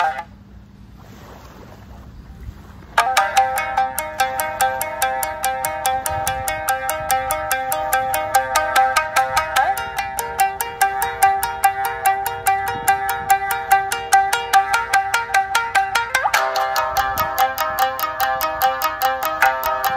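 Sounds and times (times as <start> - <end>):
shamisen playing: 0.0 - 0.3, 2.9 - 19.9.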